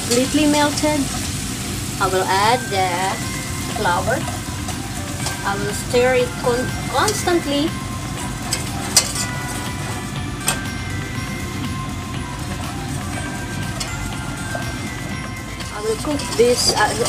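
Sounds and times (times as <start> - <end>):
whisk clinking against pot: 8.4 - 9.7.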